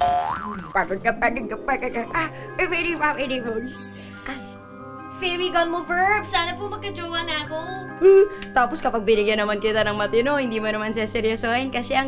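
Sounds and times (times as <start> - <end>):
cartoon boing sound effect: 0.0 - 0.9.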